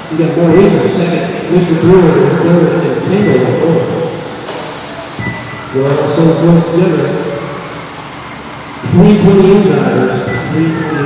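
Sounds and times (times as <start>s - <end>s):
high motor whine: 0.0s - 11.0s
radio-controlled cars racing: 0.0s - 11.0s.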